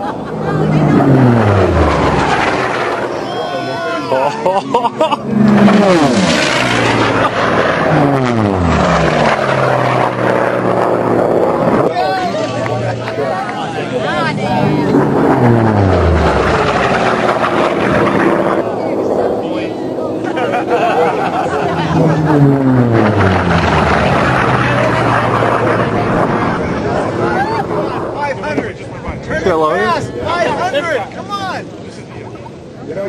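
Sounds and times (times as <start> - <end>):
voices: 0.0 - 8.0, 11.6 - 33.0
propeller plane flying past: 0.0 - 30.8.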